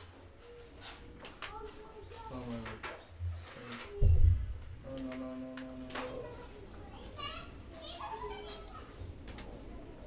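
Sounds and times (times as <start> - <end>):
children talking and playing: 0.0 - 10.0.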